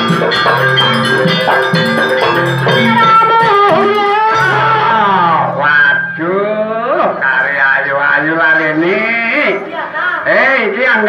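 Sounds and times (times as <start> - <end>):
gliding melody: 0.0 - 6.9.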